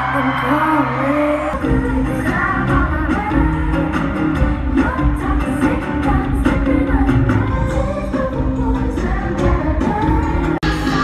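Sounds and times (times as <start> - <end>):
live pop music with singing: 0.0 - 11.0.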